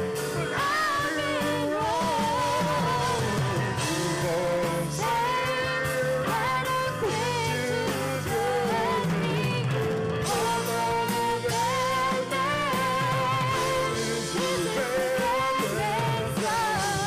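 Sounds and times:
live rock band playing: 0.0s - 17.0s
woman singing lead with vibrato: 0.1s - 17.0s
man singing harmony: 0.3s - 17.0s.

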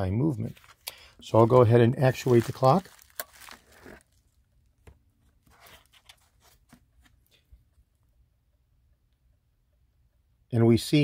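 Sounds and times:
bubble wrap crinkling: 0.6s - 4.8s.

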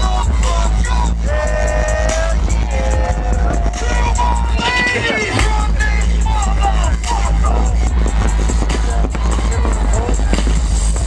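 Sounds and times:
loud live dubstep music: 0.0s - 11.0s.

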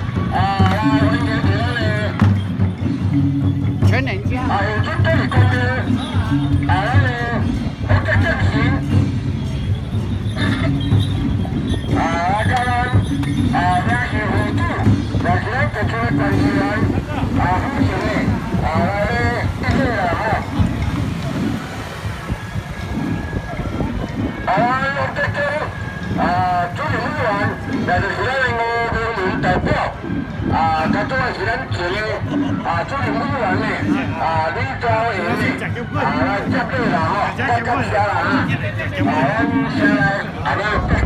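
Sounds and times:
low rumble of procession: 0.0s - 41.0s
men talking and calling out: 0.0s - 41.0s.

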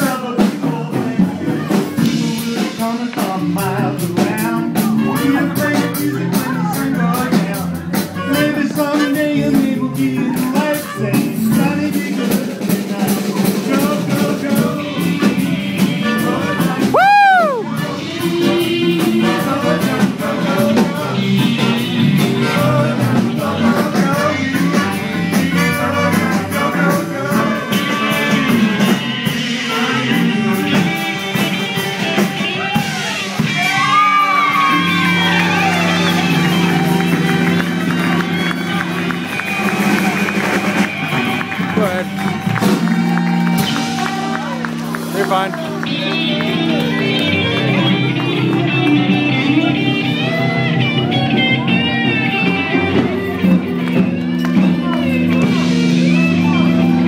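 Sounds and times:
drum kit: 0.0s - 57.0s
electric guitar: 0.0s - 57.0s
live band playing dance music: 0.0s - 57.0s.

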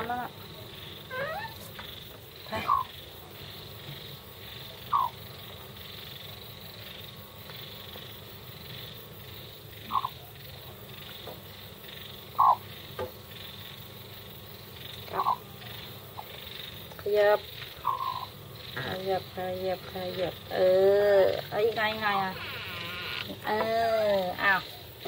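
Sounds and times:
faint steady hum: 0.0s - 25.0s
hen clucking: 1.0s - 3.0s, 4.8s - 5.3s, 9.8s - 10.2s, 12.3s - 12.8s, 14.8s - 24.8s.

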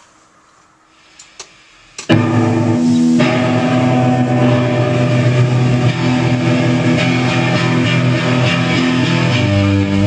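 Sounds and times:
electric guitar chords ringing: 2.1s - 10.0s.

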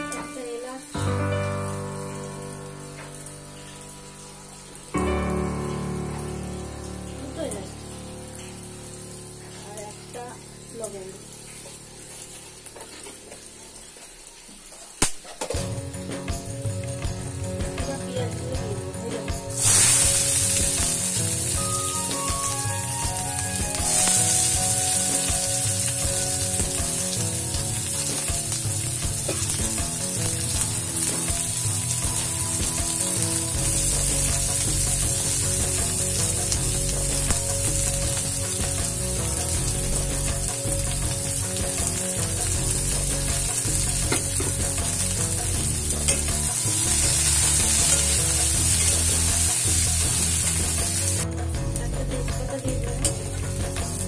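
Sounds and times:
onions sizzling in hot oil: 0.0s - 51.3s.

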